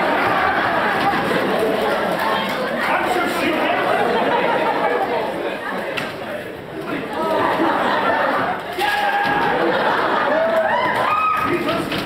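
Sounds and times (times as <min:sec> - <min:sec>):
students chattering: 0:00.0 - 0:12.0.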